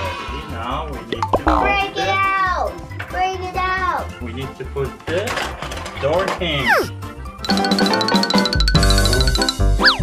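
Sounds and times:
voice-like chirps: 6.6s - 6.9s.

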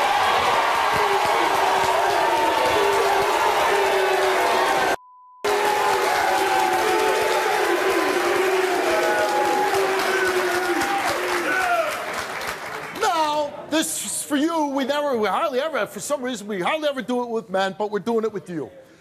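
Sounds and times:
audience shouting: 0.0s - 12.2s
audience applauding: 0.0s - 13.4s
censor bleep tone: 5.0s - 5.5s.

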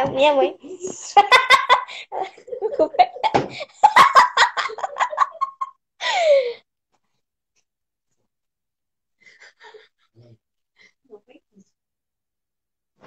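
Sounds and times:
girl laughing hard: 1.2s - 6.6s.

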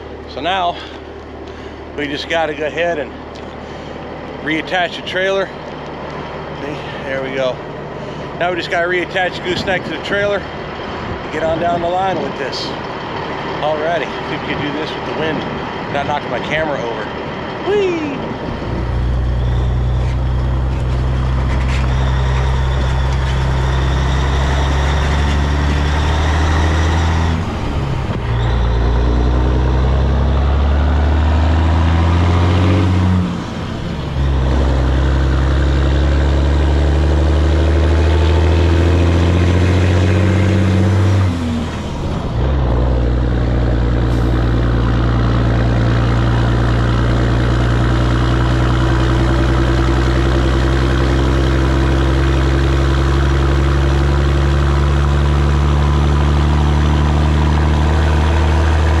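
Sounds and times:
diesel truck engine pulling: 0.0s - 59.0s.

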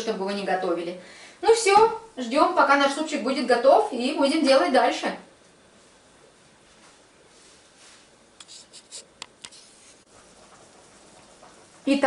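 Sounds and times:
boiling pot clicking and ticking: 10.1s - 12.0s.

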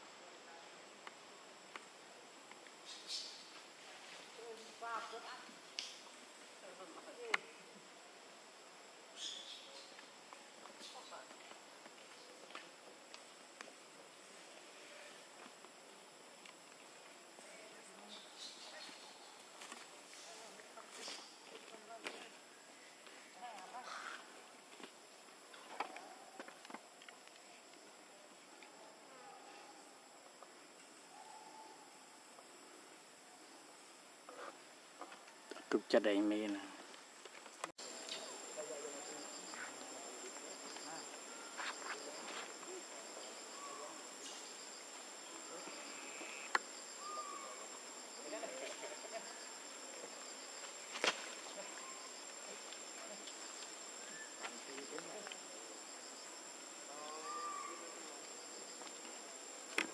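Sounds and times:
steady high hiss: 0.0s - 25.8s, 26.5s - 59.9s
insect chorus: 0.0s - 59.9s.

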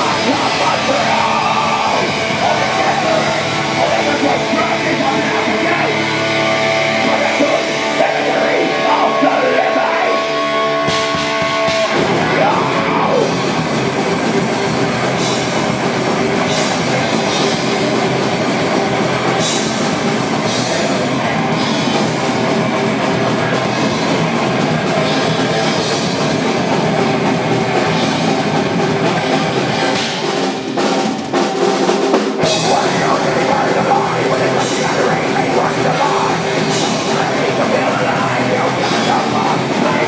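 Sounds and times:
distorted electric guitars: 0.0s - 40.0s
drum kit: 0.0s - 40.0s
heavy metal band playing: 0.0s - 40.0s.

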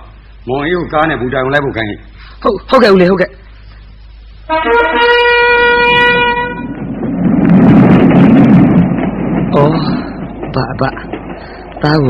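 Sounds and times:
steady horn blast: 4.4s - 6.8s
loud rushing rumble: 5.5s - 12.0s.

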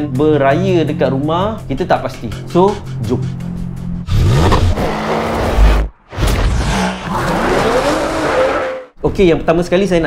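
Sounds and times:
car engine revving: 3.6s - 9.0s.

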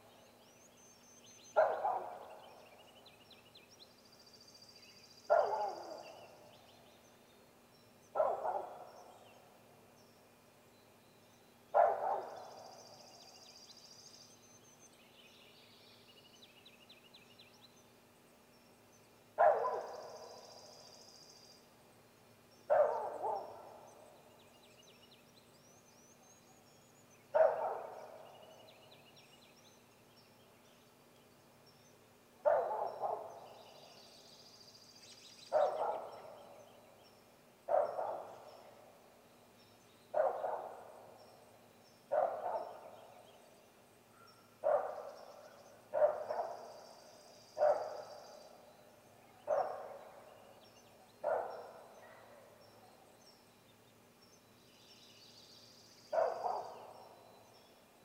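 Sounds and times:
small birds chirping: 0.0s - 58.0s.

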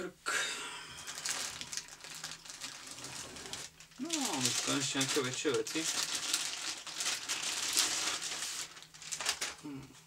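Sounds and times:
plastic packaging crinkling: 1.0s - 9.6s.

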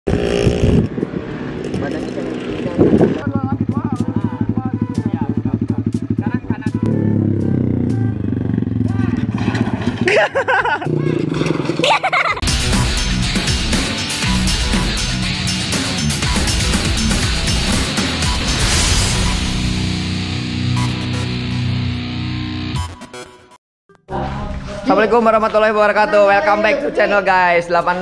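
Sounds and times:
music: 3.7s - 8.3s, 12.4s - 24.8s
small motorcycle engine: 6.9s - 12.4s
voices and laughter: 10.0s - 11.2s.

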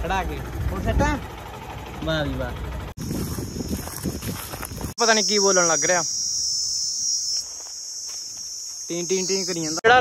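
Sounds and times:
insects chirring: 3.0s - 10.0s.

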